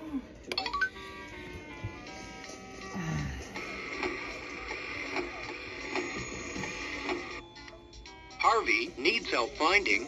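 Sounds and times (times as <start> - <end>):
toy music through small speaker: 3.6 - 10.0.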